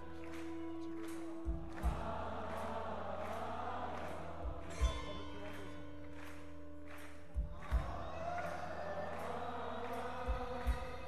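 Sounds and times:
deep drum beats: 0:01.0 - 0:02.7, 0:07.4 - 0:08.3, 0:10.1 - 0:11.0.

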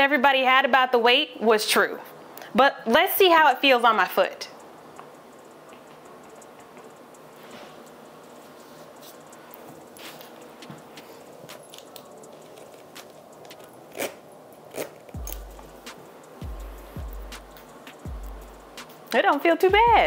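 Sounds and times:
soft rustling: 0:05.0 - 0:14.1
zipper clicks: 0:11.7 - 0:15.6
music with deep bass: 0:15.2 - 0:19.0, 0:19.7 - 0:20.0.

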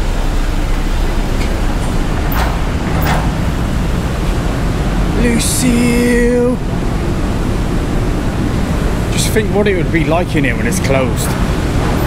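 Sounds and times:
traffic rumble: 0:00.0 - 0:12.0.

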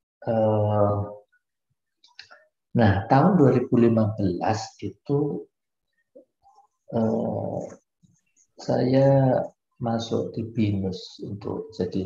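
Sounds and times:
man talking over video call: 0:00.0 - 0:12.0.

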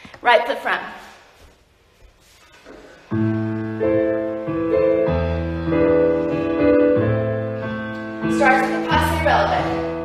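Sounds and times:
piano chords: 0:02.8 - 0:10.0.

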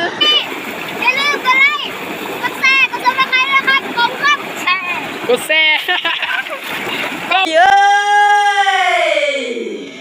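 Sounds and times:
water splashing: 0:00.0 - 0:08.0.

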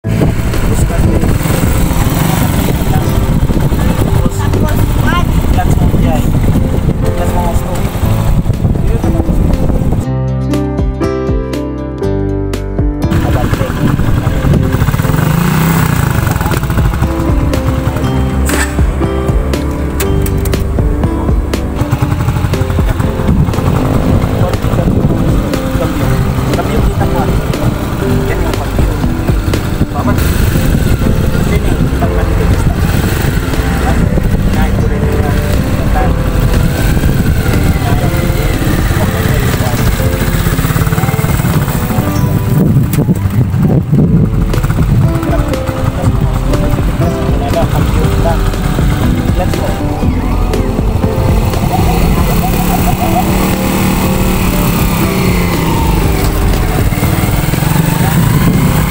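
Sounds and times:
motorcycle engine running: 0:00.0 - 0:10.1, 0:13.0 - 0:58.9
background music: 0:00.0 - 0:58.9
people's voices: 0:22.7 - 0:43.9, 0:45.0 - 0:58.9.

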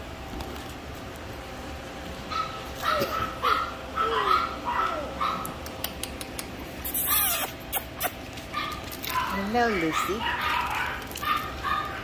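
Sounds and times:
puppies crying: 0:02.3 - 0:05.8, 0:06.4 - 0:12.0.

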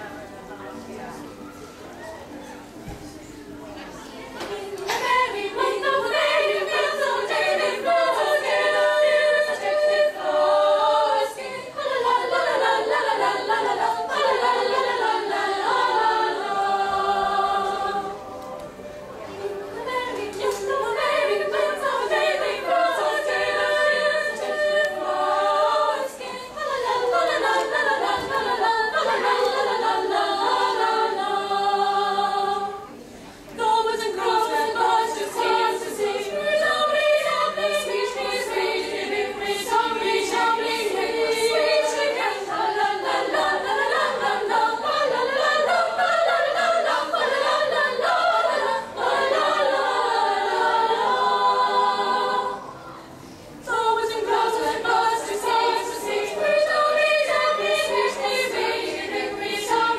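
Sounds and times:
girls' choir singing in parts: 0:03.9 - 0:59.9.

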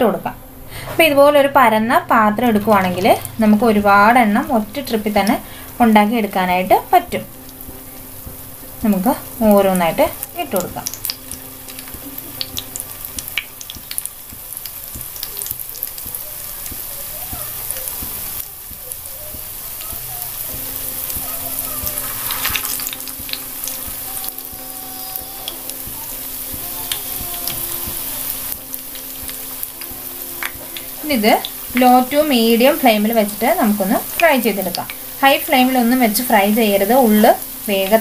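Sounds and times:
fritters frying in hot oil: 0:02.3 - 0:38.0
oil popping and crackling: 0:02.4 - 0:38.0.

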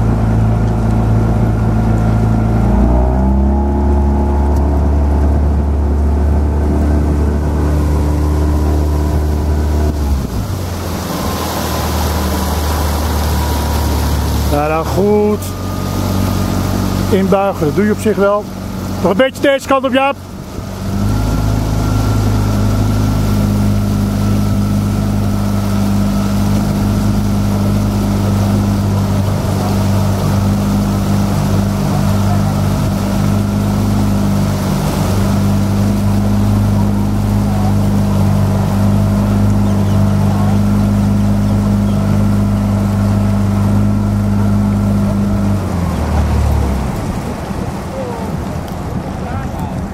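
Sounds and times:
motorboat engine running: 0:00.0 - 0:49.9.

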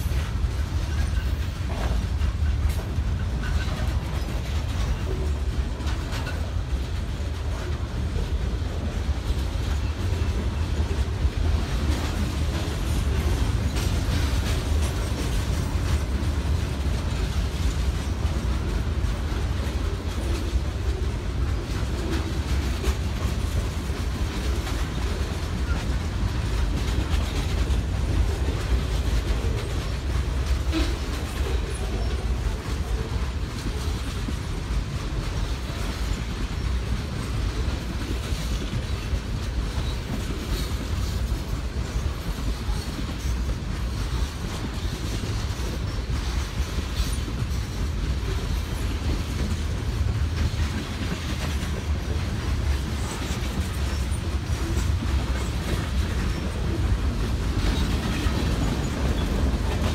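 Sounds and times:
freight train rolling past: 0:00.0 - 0:59.9.

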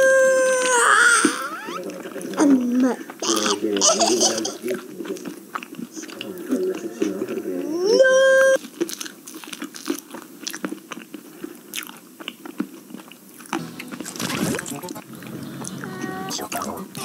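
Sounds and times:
voice holding loud note: 0:13.6 - 0:17.0.

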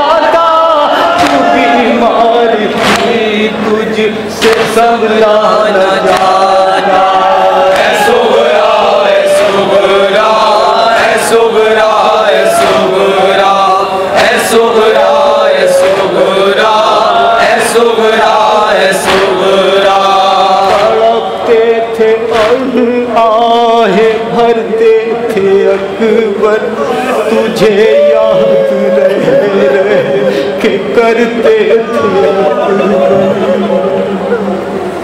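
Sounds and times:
men chanting a lament: 0:00.0 - 0:35.0
crowd slapping chests: 0:01.0 - 0:21.6, 0:22.3 - 0:22.9.

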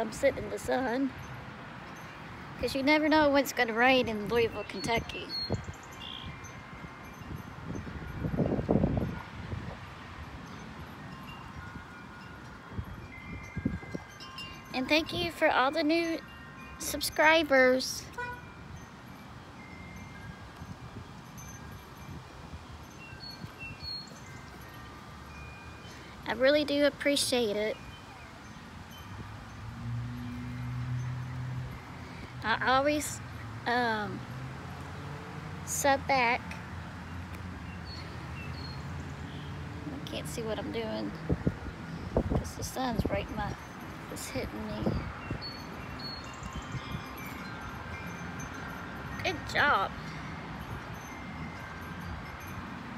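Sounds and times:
wind chimes ringing: 0:00.0 - 0:52.9.

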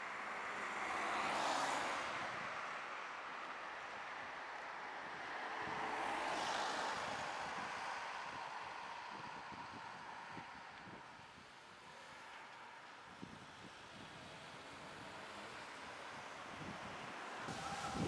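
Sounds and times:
cars passing: 0:00.0 - 0:18.0.

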